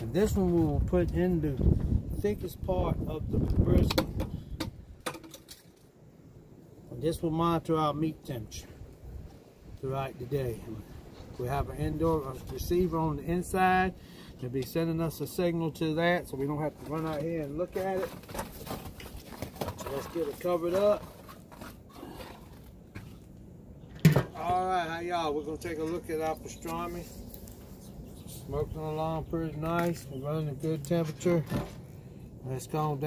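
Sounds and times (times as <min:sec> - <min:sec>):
grill lid handling rustle: 0:16.3 - 0:23.3, 0:29.5 - 0:31.9.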